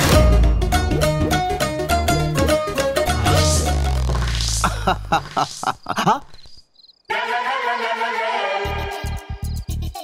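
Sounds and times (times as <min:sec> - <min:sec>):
music: 0:00.0 - 0:04.3, 0:07.1 - 0:10.0
man speaking: 0:03.1 - 0:06.4
man chuckling: 0:03.1 - 0:06.5
crickets chirping: 0:03.2 - 0:07.1.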